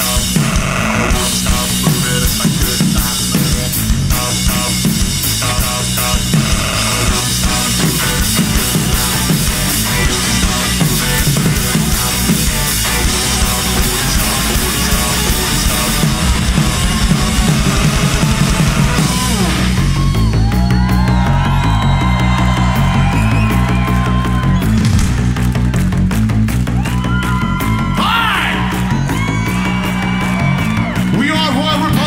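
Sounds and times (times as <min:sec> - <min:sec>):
sliding bending lead guitar notes: 0:00.0 - 0:20.9
bass riff: 0:00.0 - 0:32.0
rock band playing live: 0:00.0 - 0:32.0
steady drum beat: 0:00.0 - 0:32.0.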